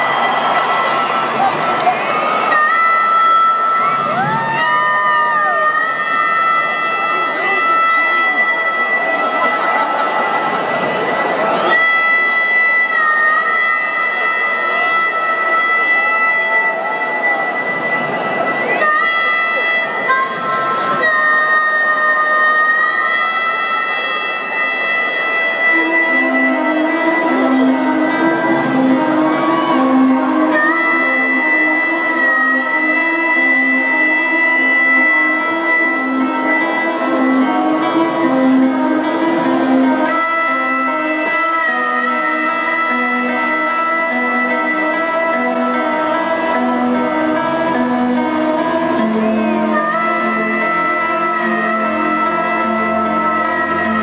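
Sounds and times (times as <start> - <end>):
harmonica melody: 0.0 - 54.0
loud noisy crowd: 0.0 - 54.0
low instrument notes: 3.5 - 54.0.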